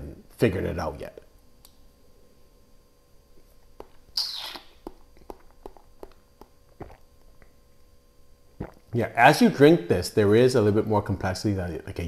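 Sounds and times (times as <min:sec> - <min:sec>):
wet mouth clicks: 0:03.8 - 0:07.6, 0:08.6 - 0:08.9.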